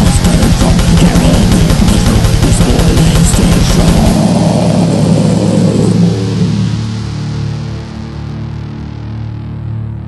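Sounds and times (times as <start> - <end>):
fast drumming: 0.0 - 6.3
distorted guitar and bass chord: 0.0 - 10.0.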